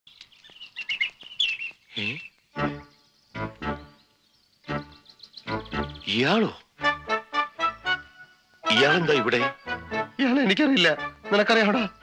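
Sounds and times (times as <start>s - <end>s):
birds chirping: 0.1s - 12.0s
man's voice: 8.7s - 9.5s.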